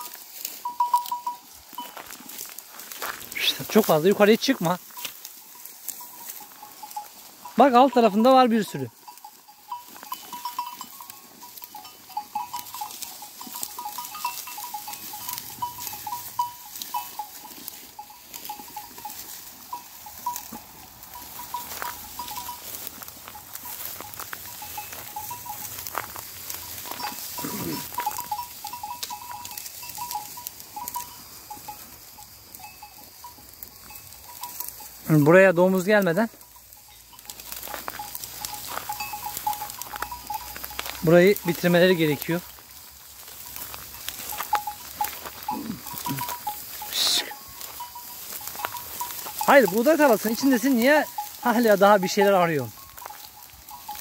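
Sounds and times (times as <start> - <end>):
dry stalks crackling: 0.0 - 54.0
sheep bells clinking: 0.0 - 54.0.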